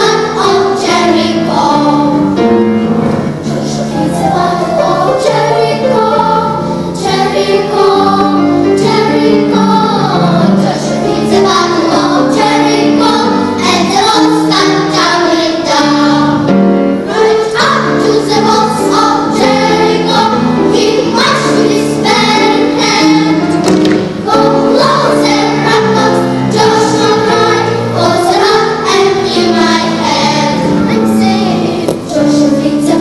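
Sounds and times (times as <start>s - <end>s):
children's choir singing: 0.0s - 33.0s.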